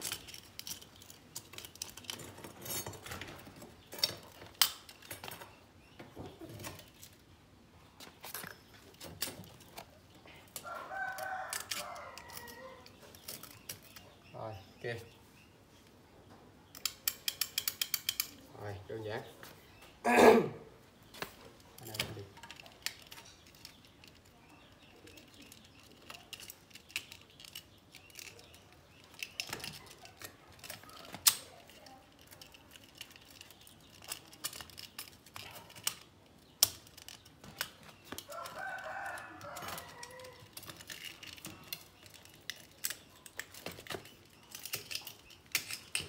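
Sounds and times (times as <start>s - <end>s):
rooster crowing: 38.3s - 40.5s.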